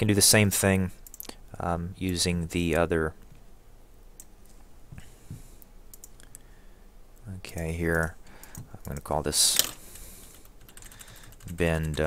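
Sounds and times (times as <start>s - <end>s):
faint low room hum: 0.0s - 12.0s
computer mouse clicks: 1.0s - 1.4s, 5.9s - 6.4s.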